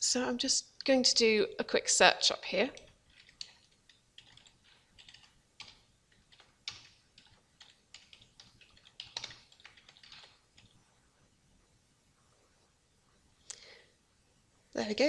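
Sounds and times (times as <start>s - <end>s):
faint computer keyboard typing: 2.5s - 10.8s.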